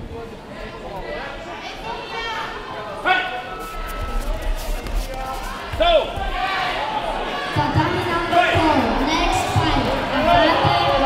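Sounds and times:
people calling out in a hall: 5.3 - 11.0.

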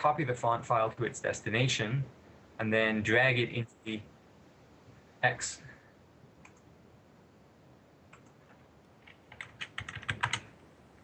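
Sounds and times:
computer keyboard typing: 8.1 - 10.5.

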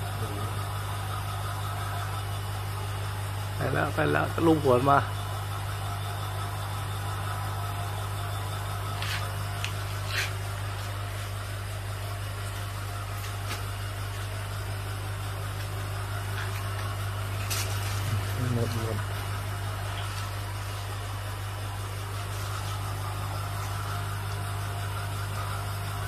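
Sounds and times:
aquarium pump humming: 0.0 - 26.0.

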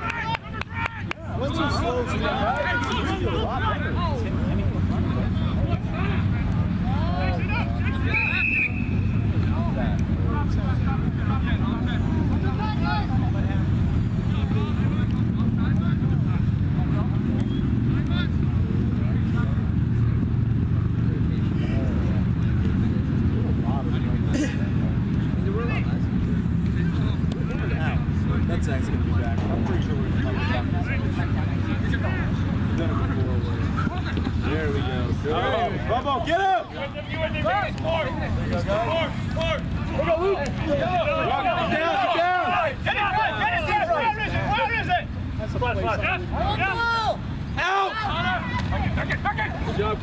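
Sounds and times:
distant players shouting: 0.0 - 50.0
referee's whistle blast: 8.0 - 9.2.

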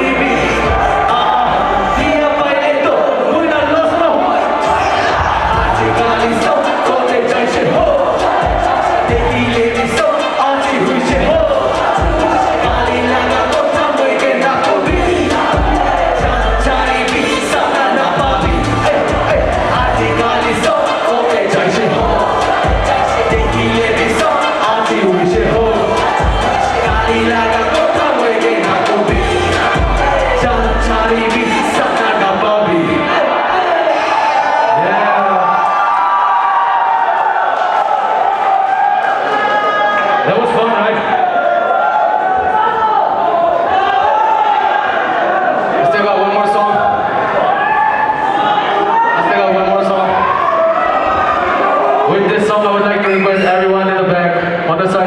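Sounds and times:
rapped vocals: 0.0 - 35.8
crowd cheering: 0.0 - 55.0
beat with heavy bass: 4.5 - 32.2.

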